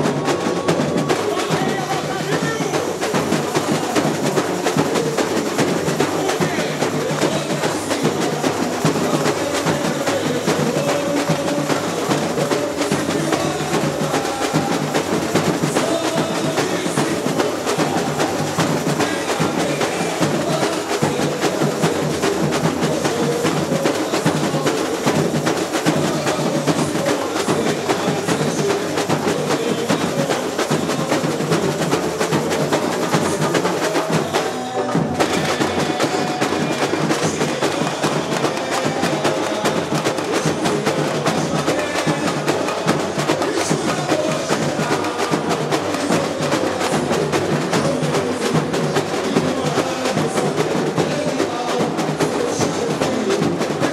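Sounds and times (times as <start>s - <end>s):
samba drums playing: 0.0s - 53.9s.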